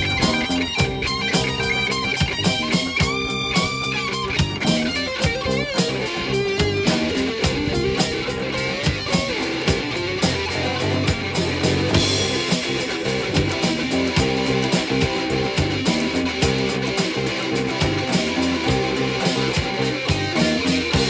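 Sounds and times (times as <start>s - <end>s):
bass guitar: 0.0s - 21.0s
electric guitar lead: 0.0s - 21.0s
electronic drum beat: 0.0s - 21.0s
strummed acoustic guitar: 0.0s - 21.0s.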